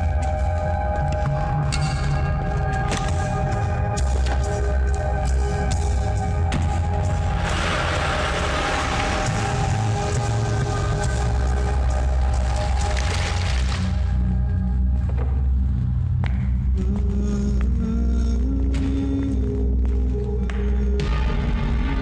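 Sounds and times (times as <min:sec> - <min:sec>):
tense background music: 0:00.0 - 0:22.0
low rumble: 0:05.7 - 0:20.9.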